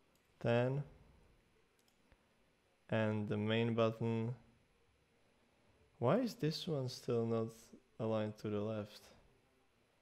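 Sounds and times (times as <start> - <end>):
person speaking: 0.4 - 1.0
computer mouse clicks: 1.7 - 2.2.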